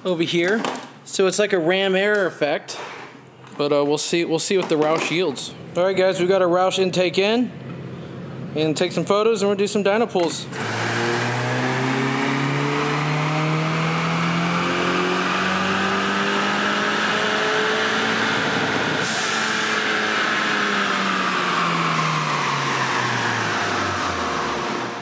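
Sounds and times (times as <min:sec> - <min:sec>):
car engine revving at full throttle: 0:10.5 - 0:25.0.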